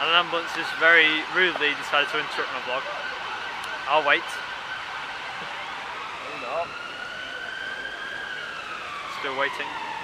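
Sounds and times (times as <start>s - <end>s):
ambulance siren wailing: 0.0s - 10.0s.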